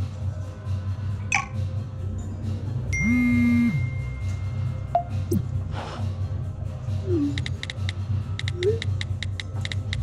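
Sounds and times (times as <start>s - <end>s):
low pulsing background music: 0.0s - 10.0s
phone notification buzz: 3.0s - 3.9s.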